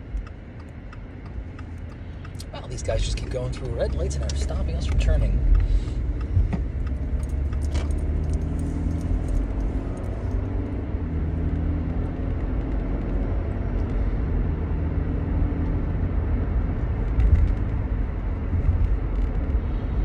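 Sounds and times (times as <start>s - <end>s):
car engine rumble: 0.0s - 20.0s
tyres on road: 0.0s - 20.0s
car bump: 6.3s - 6.7s.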